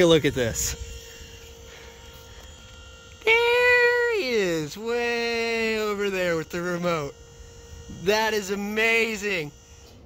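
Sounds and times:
hydraulic pump humming: 0.0 - 10.0.

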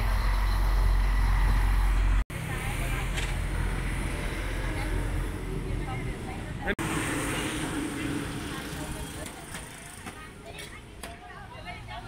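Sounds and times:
voices: 2.4 - 12.0.

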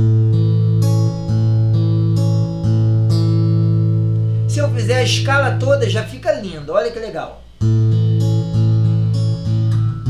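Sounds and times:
acoustic guitar fingerpicked: 0.0 - 6.2, 6.8 - 10.0.

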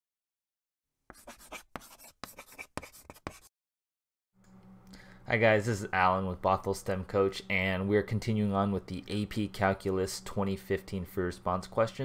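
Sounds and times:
chalk scratching on a blackboard: 1.1 - 3.5.

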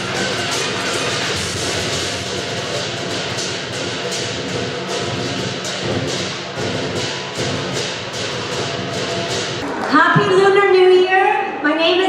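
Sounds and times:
cymbal crashes: 0.0 - 9.6
gong: 0.0 - 9.6
big drum beating: 0.0 - 10.7.

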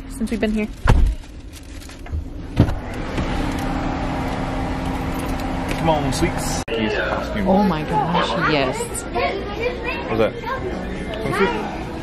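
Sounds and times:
outdoor noise: 0.0 - 12.0.

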